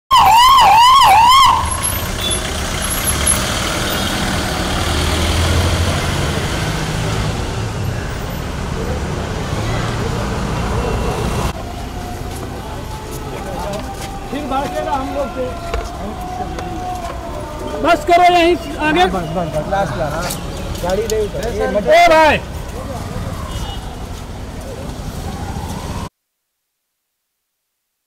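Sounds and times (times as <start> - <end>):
ambulance siren yelping: 0.1 - 3.0, 10.6 - 20.3, 25.1 - 26.1
low rumble of street traffic: 0.1 - 26.1.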